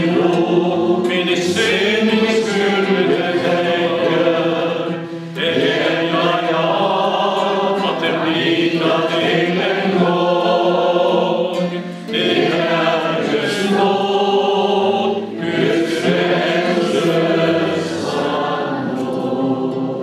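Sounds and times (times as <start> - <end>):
acoustic guitar: 0.0 - 20.0
men singing a hymn: 0.0 - 20.0.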